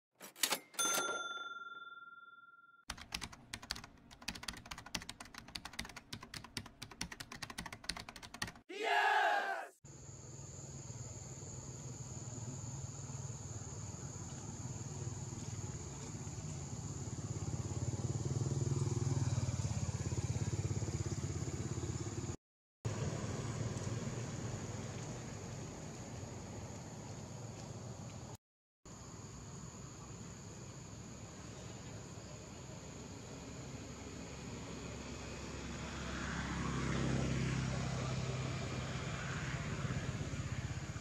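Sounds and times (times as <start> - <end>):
ringing chime: 0.6 - 2.8.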